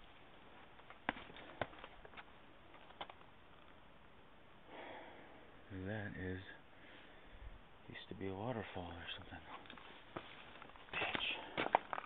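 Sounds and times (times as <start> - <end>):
faint background hiss: 0.0 - 12.0
footsteps scuffing on rock: 0.8 - 2.3, 9.5 - 12.0.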